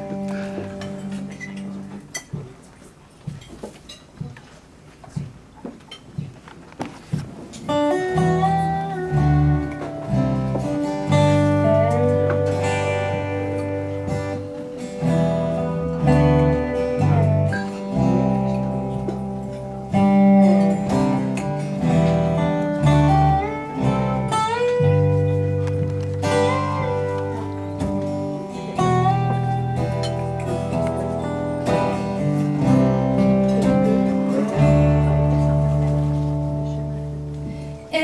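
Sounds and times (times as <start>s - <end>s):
slide resonator guitar melody: 0.0s - 2.5s, 7.5s - 38.0s
acoustic guitar strumming: 0.0s - 2.6s, 7.1s - 38.0s
quiet guitar plucks: 0.0s - 38.0s.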